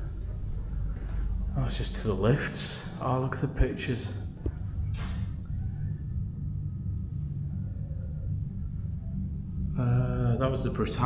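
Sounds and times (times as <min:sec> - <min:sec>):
low indoor rumble: 0:00.0 - 0:11.0.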